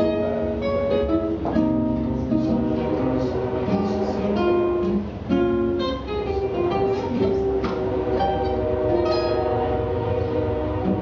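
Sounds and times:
acoustic guitar playing jazz: 0.0 - 11.0
train rumbling by: 5.9 - 11.0.

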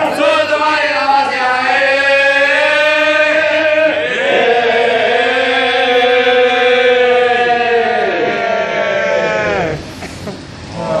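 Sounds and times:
person chanting: 0.0 - 9.9
quieter voices: 0.0 - 11.0.

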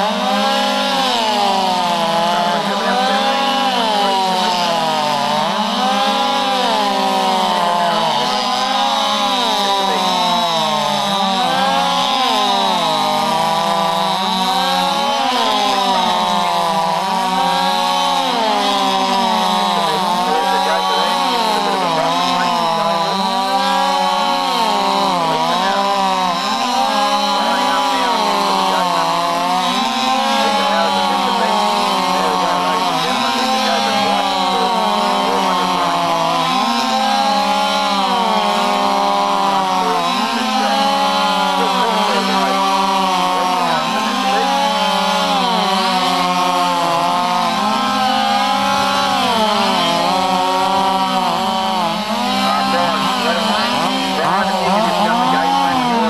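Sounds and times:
chainsaws cutting logs: 0.0 - 56.0.

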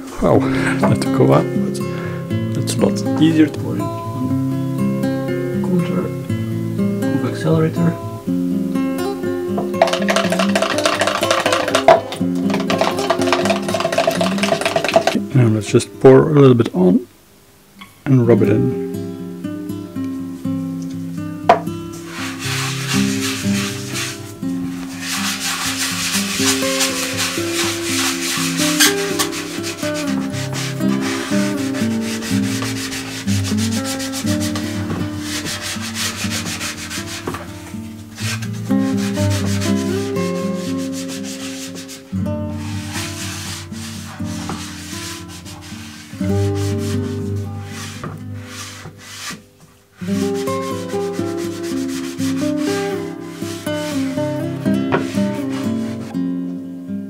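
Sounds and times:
background music: 0.0 - 16.8, 18.1 - 49.4, 50.0 - 57.0
pad scrubbing wood: 9.8 - 15.2, 22.0 - 56.1.

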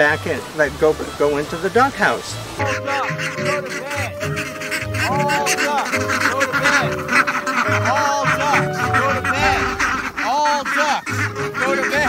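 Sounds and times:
background music: 0.0 - 12.0
ducks quacking: 0.0 - 12.0.

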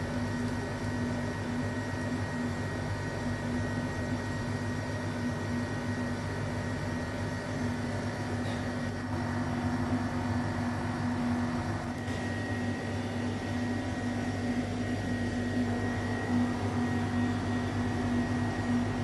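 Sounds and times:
steady machine hum: 0.0 - 19.0.

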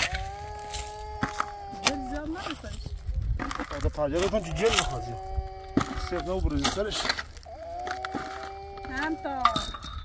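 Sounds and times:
shovel striking stony soil: 5.8 - 9.1.

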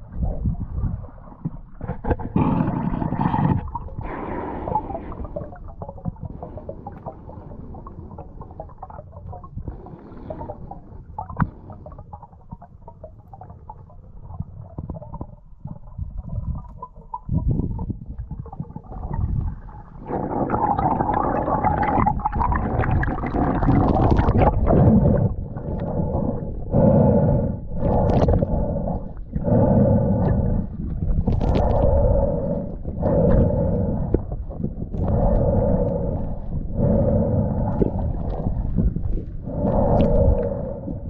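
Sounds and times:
exhaled bubbles underwater: 0.0 - 41.0
irregular bubbling water noise: 0.0 - 41.0.

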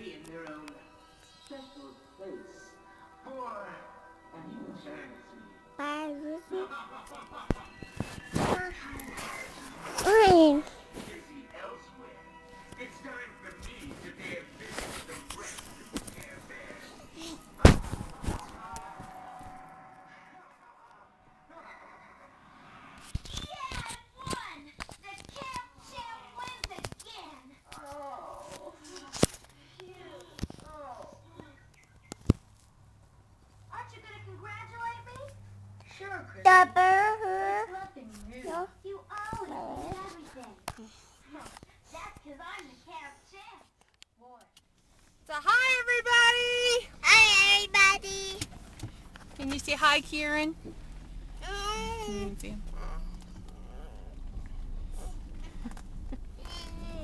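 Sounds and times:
child vocalising: 51.4 - 54.3, 56.3 - 57.0.

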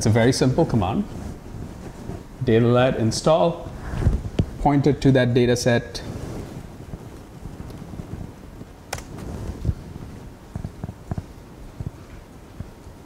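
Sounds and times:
lecture hall hum: 0.0 - 13.0.

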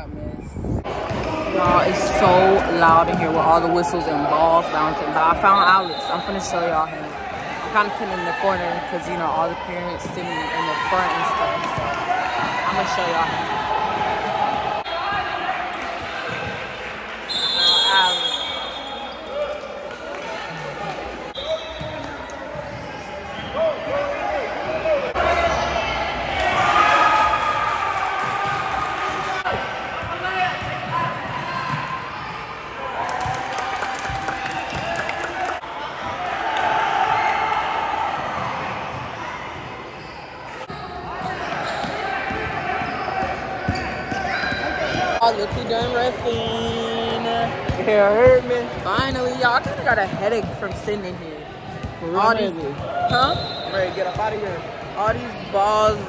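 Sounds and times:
referee's whistle: 5.4 - 6.6, 17.3 - 19.3, 21.3 - 22.1, 23.3 - 23.8, 53.1 - 54.3
basketballs bouncing on hard floor: 41.1 - 50.9.

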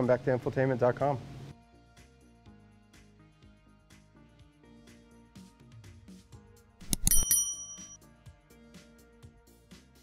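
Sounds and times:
bell-like ding: 6.9 - 8.0.

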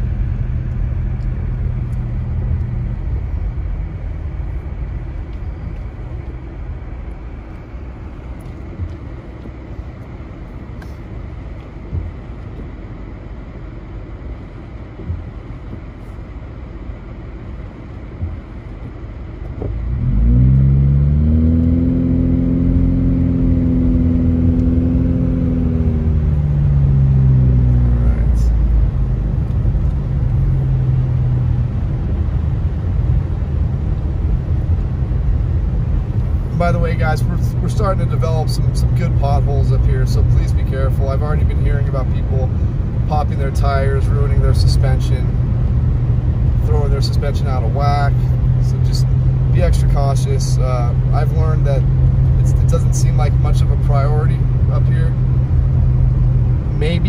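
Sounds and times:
car engine idling and accelerating: 0.0 - 57.0
road rumble: 0.0 - 57.0.

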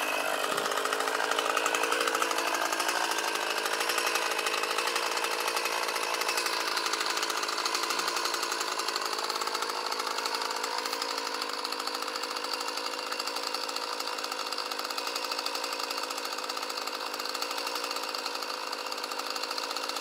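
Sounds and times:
chainsaw idling: 0.0 - 20.0.

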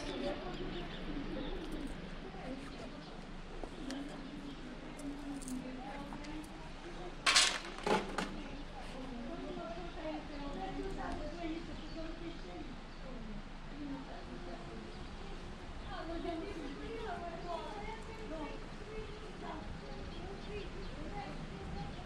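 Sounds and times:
people talking indistinctly: 0.0 - 22.0.

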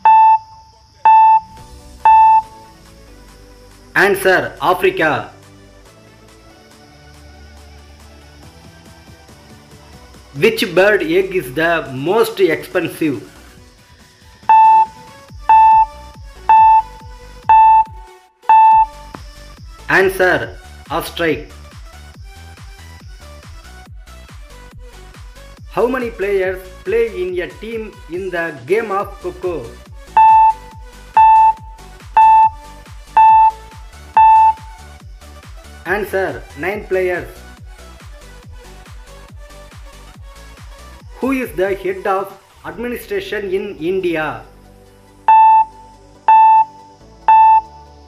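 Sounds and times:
short electronic beeps: 0.0 - 2.6, 14.4 - 19.0, 30.2 - 34.8, 45.3 - 47.8
background music with steady beat: 0.0 - 48.0.

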